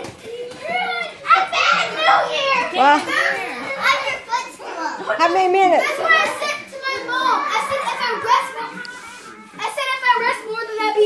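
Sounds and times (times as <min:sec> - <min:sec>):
children shouting and squealing: 0:00.0 - 0:11.0.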